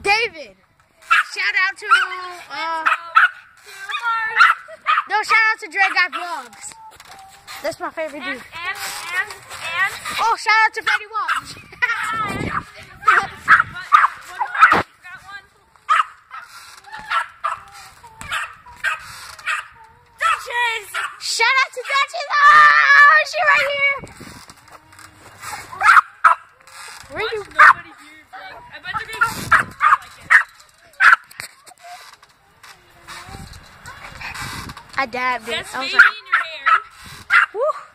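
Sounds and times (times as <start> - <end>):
dog barking: 4.4 - 5.1, 15.9 - 16.4, 29.5 - 31.2, 36.0 - 37.6.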